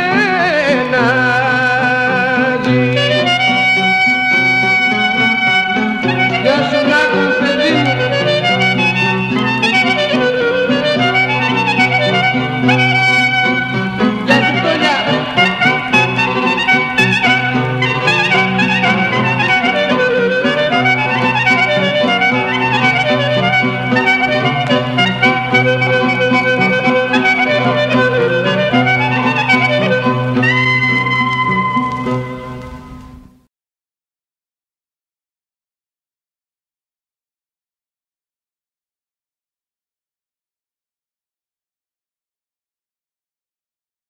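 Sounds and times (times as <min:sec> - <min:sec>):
lower instrumental accompaniment: 0:00.0 - 0:33.4
clarinet melody: 0:00.2 - 0:33.4.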